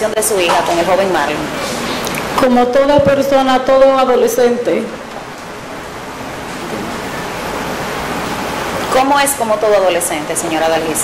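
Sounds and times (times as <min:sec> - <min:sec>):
broad hiss of room noise: 0:00.0 - 0:11.0.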